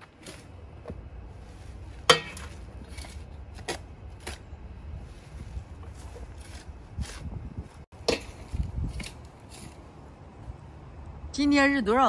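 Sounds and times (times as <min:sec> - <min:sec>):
shovel scraping soil: 0:00.0 - 0:07.4, 0:08.0 - 0:09.9
ringing metal clank: 0:02.1 - 0:02.5.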